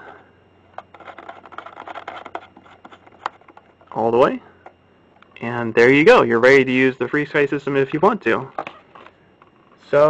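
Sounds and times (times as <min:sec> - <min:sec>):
antenna threads rubbing and clicking: 0:00.7 - 0:04.0.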